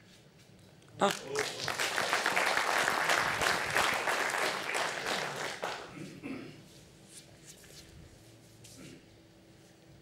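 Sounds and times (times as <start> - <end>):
crowd applauding: 1.0 - 5.9.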